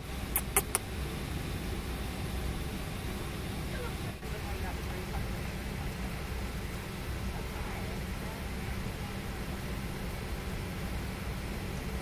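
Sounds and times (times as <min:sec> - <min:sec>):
airliner cabin rumble: 0:00.0 - 0:12.0
quick sharp clicks: 0:00.4 - 0:00.8.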